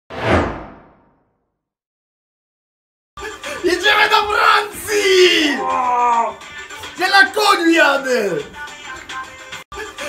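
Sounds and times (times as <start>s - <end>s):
whoosh sound effect: 0.1s - 1.2s.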